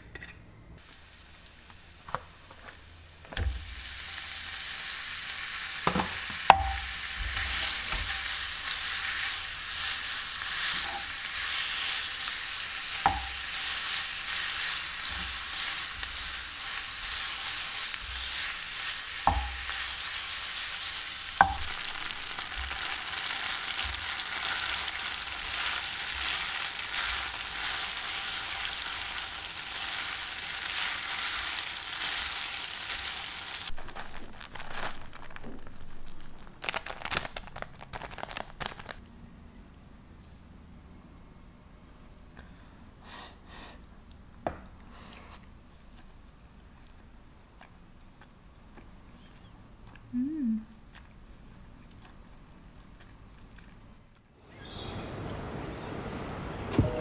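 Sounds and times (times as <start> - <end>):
meat sizzling in a frying pan: 0.8 - 34.8
wooden spatula knocking on pan: 19.3 - 19.6.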